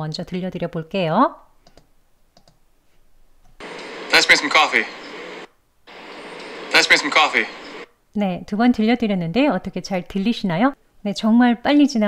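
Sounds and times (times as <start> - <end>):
soundtrack background: 3.6 - 7.8
person speaking dialogue: 4.1 - 5.0, 6.7 - 7.6.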